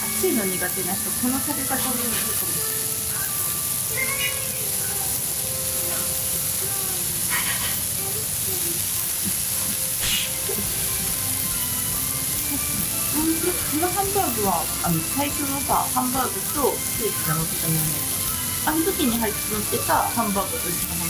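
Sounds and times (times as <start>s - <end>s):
food sizzling on hot iron plate: 0.0s - 21.0s
soft background music: 0.0s - 21.0s
short breathy puffs: 7.3s - 7.9s.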